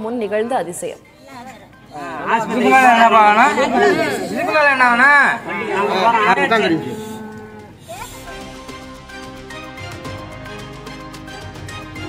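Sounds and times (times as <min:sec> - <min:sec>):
faint music tones: 0:00.0 - 0:08.6.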